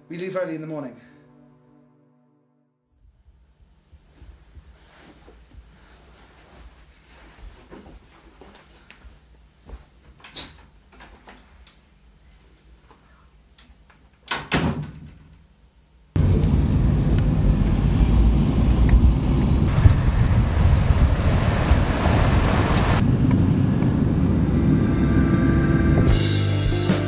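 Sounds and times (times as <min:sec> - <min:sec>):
door banging shut: 0:14.3 - 0:15.3
car engine: 0:16.2 - 0:26.2
tyre road noise: 0:16.2 - 0:26.2
guitar music: 0:25.0 - 0:27.0.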